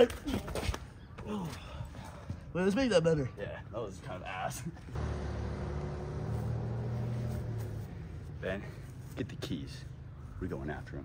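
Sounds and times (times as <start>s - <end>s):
car engine humming: 4.9s - 10.3s.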